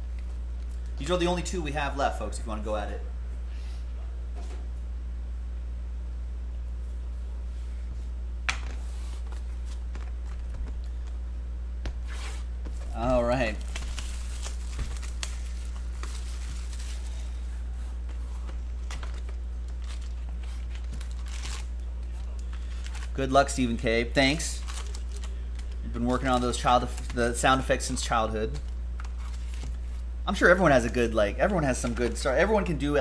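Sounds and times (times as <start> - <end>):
steady low hum: 0.0 - 33.0
plastic shrink wrap tearing: 13.2 - 17.1, 18.9 - 23.2, 24.6 - 25.7.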